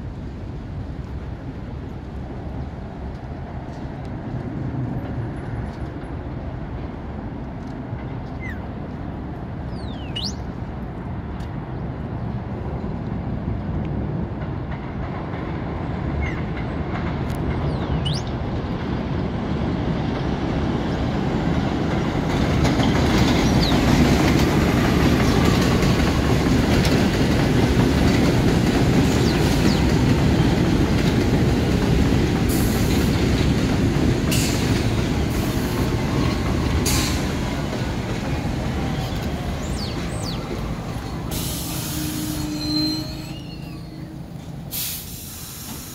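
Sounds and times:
subway train rumbling: 0.0 - 45.9
wheels clicking over rail joints: 21.5 - 45.9
faint wheel squeal: 41.4 - 45.9.

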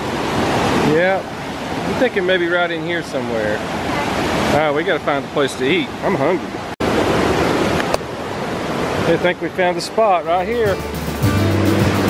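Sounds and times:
river rapids rushing: 0.0 - 12.0.

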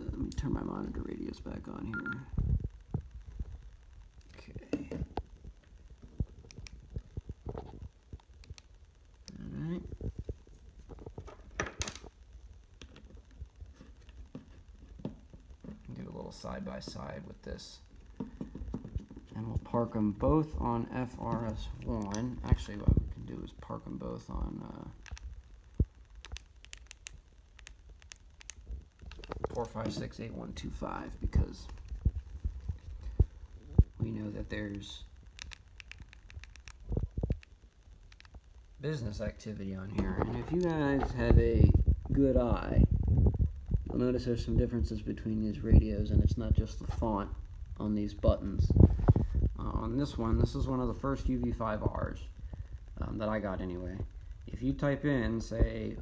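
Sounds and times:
radios handled clicking: 26.2 - 30.0, 34.7 - 38.4.

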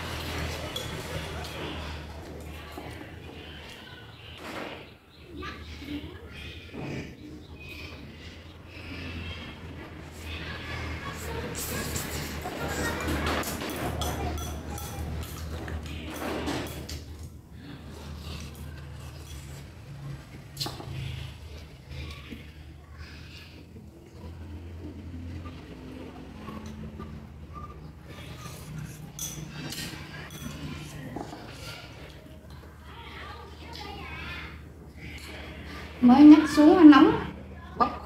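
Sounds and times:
tableware clinking: 0.4 - 2.0, 12.7 - 17.0, 28.4 - 31.5
chewing: 11.1 - 35.9.

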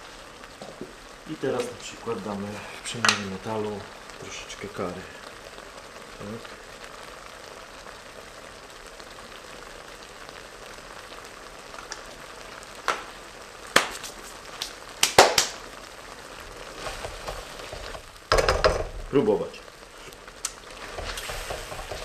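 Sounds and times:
mixture sizzling in a wok: 0.0 - 22.0
sharp knocks: 18.3 - 18.9.

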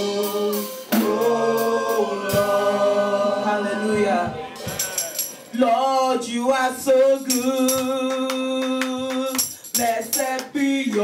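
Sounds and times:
group singing gospel song: 0.0 - 11.0.

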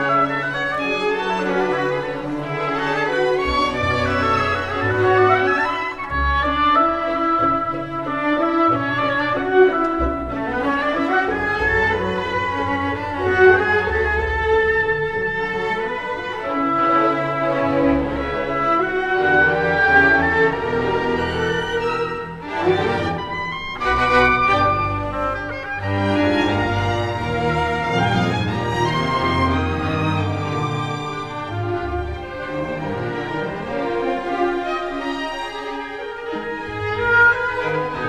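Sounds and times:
cellos and double basses: 0.0 - 38.0
violins playing melody: 0.0 - 38.0.

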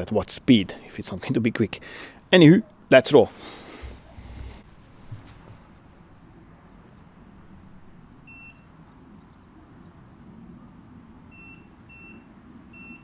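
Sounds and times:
tyre inflator beeps: 8.3 - 8.6, 11.3 - 13.0.

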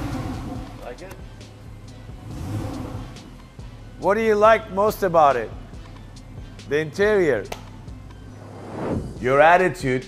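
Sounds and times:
car engine revving: 0.0 - 0.8, 2.1 - 3.4
background music: 0.0 - 10.0.

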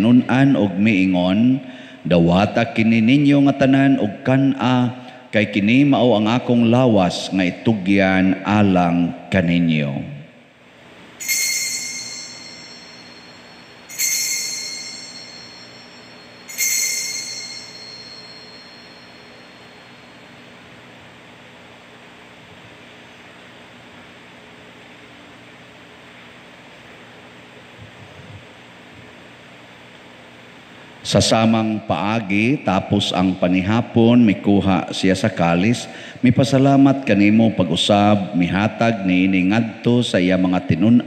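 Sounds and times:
altar bell ringing: 11.2 - 20.3.

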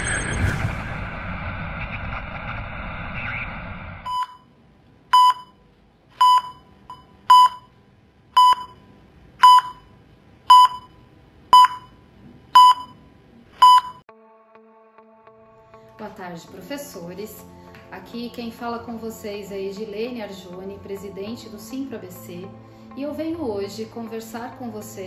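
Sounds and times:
tv static hiss: 1.6 - 4.0
heart monitor beeps: 4.1 - 4.5, 5.1 - 5.6, 6.2 - 7.7, 8.4 - 9.9, 10.5 - 12.0, 12.6 - 13.0, 13.6 - 14.0.

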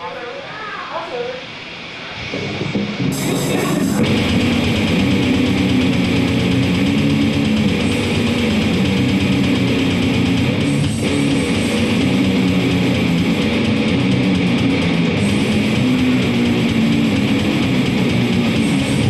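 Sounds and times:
loud electric guitar riff: 2.2 - 19.0.

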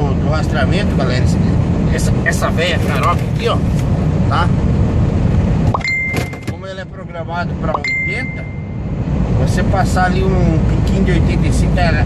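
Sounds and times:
truck cab drone: 0.0 - 12.0
high electronic beep: 5.7 - 6.6, 7.7 - 8.9.

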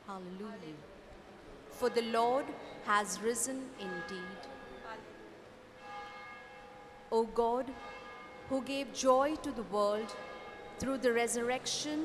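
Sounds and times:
faint bell ringing: 1.8 - 12.0.

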